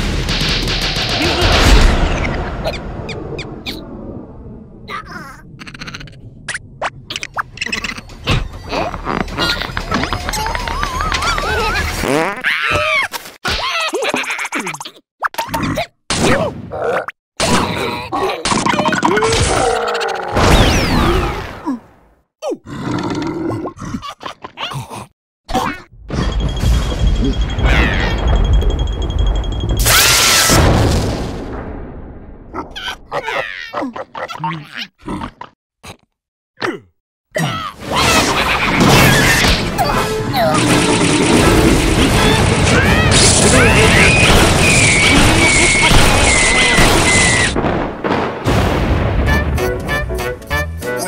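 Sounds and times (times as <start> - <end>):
cartoon blast: 1.0 - 3.8, 20.3 - 21.6, 26.1 - 28.4, 29.8 - 31.8, 37.8 - 47.6
cartoon character squeals and grunts: 10.2 - 21.6, 32.7 - 35.0, 37.4 - 40.8, 42.1 - 47.6
comic sound effects: 37.8 - 47.6.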